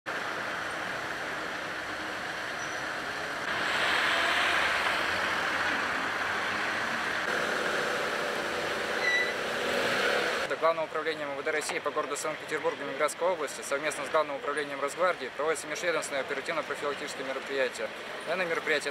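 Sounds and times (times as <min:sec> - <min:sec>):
road traffic noise: 0:00.1 - 0:18.9
short high squeak: 0:02.6 - 0:02.9, 0:09.0 - 0:09.4.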